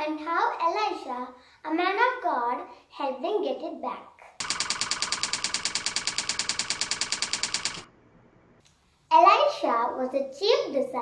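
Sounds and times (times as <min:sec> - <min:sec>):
keyboard typing clicks: 0:04.4 - 0:07.9.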